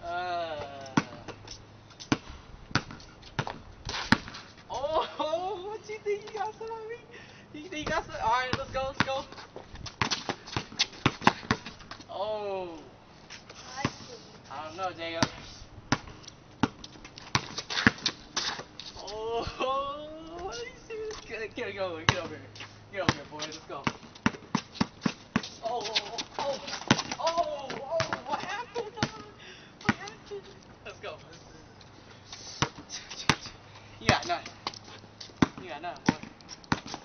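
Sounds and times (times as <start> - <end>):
basketball bouncing on concrete: 0.6 - 4.4, 7.7 - 12.1, 15.0 - 18.7, 20.3 - 30.3, 32.6 - 37.0.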